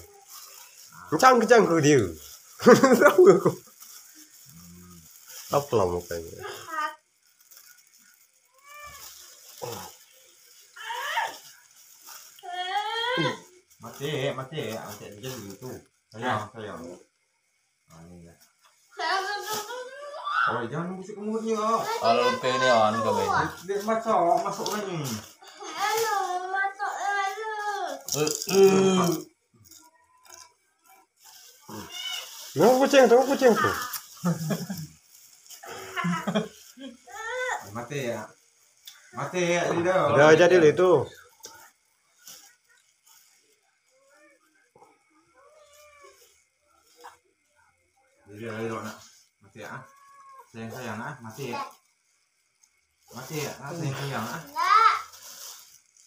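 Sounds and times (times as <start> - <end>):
person wordless vocal sound: 28.2 - 29.3.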